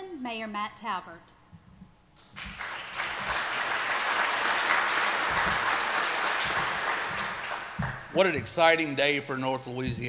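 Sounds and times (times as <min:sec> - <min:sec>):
audience applauding: 0:02.4 - 0:08.9.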